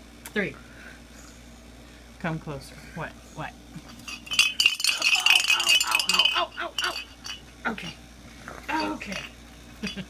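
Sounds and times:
jingle bell ringing: 3.8s - 8.0s, 8.7s - 10.0s.

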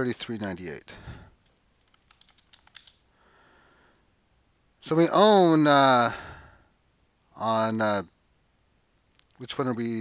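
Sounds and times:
faint soft hiss: 0.0s - 10.0s
computer keyboard typing: 1.8s - 3.0s.

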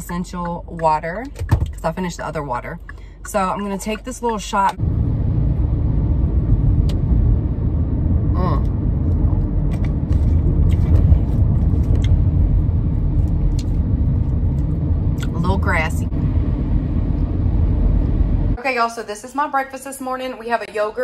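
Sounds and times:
car engine rumble inside cabin: 0.0s - 18.6s.

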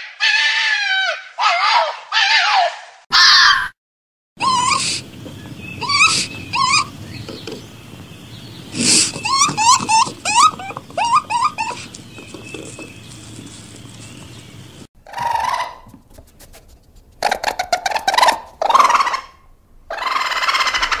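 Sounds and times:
animal chirps: 4.4s - 15.9s
harsh rattling animal calls: 4.4s - 15.9s, 17.2s - 21.0s.

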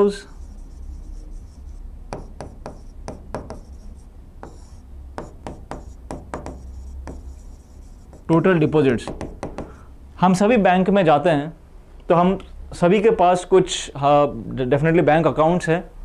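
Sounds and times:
pen scratching and tapping on screen: 0.3s - 9.7s.

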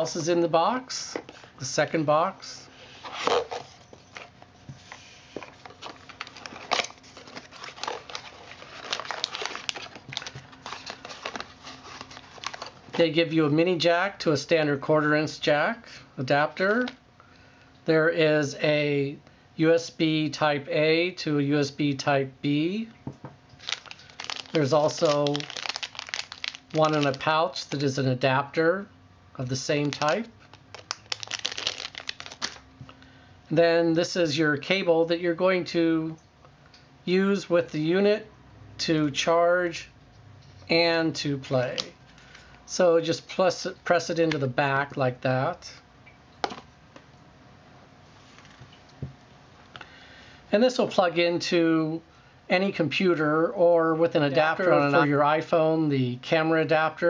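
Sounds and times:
packaging rustling and crinkling: 2.9s - 13.1s, 23.6s - 27.3s, 29.7s - 32.6s.

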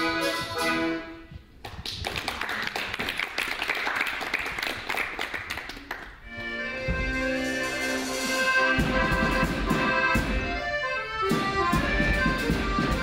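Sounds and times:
hands clapping in applause: 1.6s - 6.2s
song with instrumental backing: 6.3s - 13.0s.

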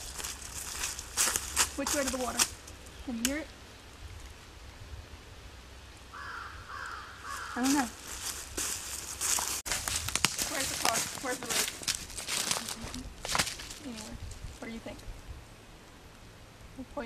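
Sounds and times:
footsteps through dry leaves: 0.0s - 2.8s, 6.7s - 14.6s.

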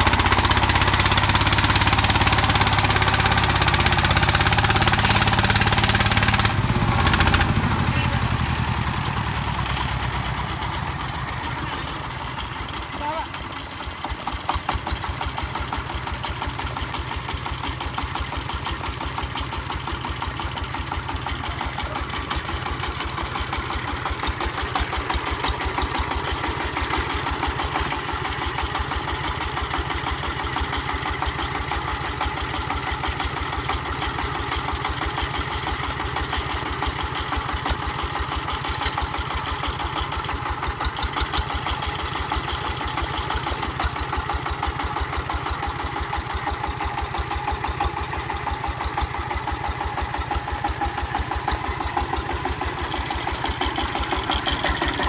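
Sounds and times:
diesel engine chugging: 0.0s - 55.0s.

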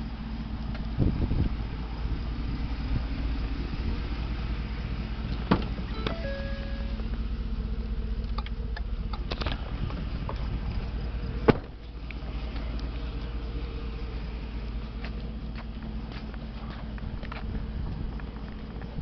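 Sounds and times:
vehicle rumble from inside cab: 0.0s - 19.0s
two-pitch beep: 5.9s - 7.0s
thumps: 11.4s - 11.8s.

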